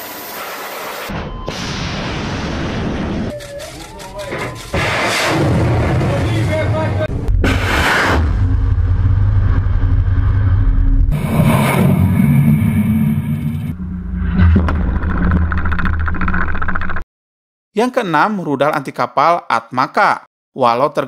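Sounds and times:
rocket motor rumble: 4.3s - 17.0s
loud rushing blast: 4.7s - 15.2s.

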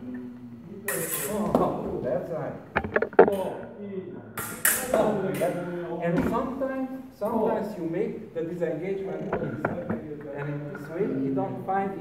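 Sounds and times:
people talking: 0.0s - 12.0s
sabre blades clashing: 4.4s - 5.5s.

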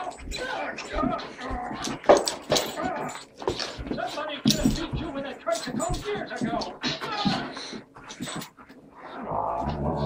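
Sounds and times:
dogs play-fighting: 0.0s - 10.0s
dog growling: 9.0s - 10.0s.

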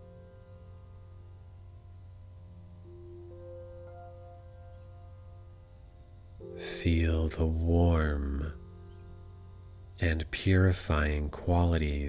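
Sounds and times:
ambient meditation music: 0.0s - 12.0s
crickets chirping: 0.0s - 12.0s
low steady drone: 0.0s - 12.0s.

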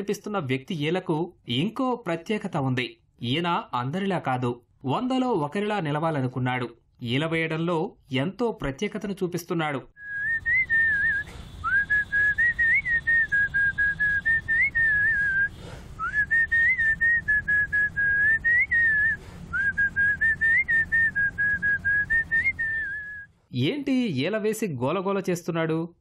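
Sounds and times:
man whistling a tune: 10.0s - 23.3s.

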